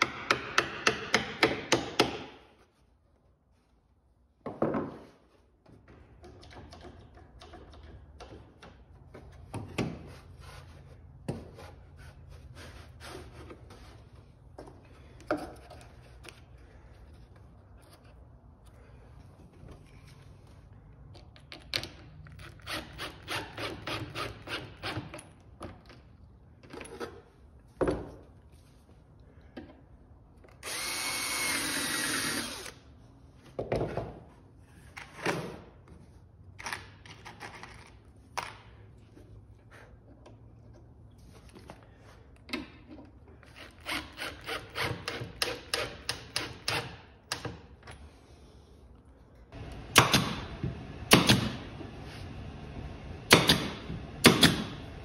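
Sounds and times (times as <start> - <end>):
power drill running: 30.6 - 32.8.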